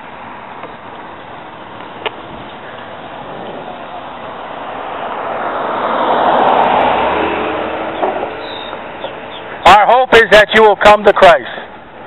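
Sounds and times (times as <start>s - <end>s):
road vehicle passing by: 0.0s - 10.3s.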